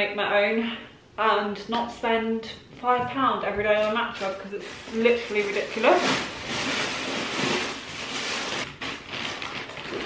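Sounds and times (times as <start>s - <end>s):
plastic packaging rustling: 3.5s - 10.0s.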